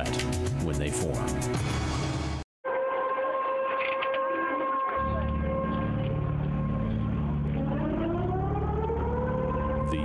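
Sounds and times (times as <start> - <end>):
warning siren steady tone: 2.6 - 10.0.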